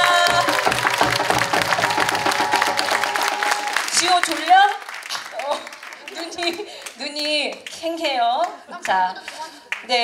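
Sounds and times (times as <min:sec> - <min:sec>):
applause: 0:00.0 - 0:10.0.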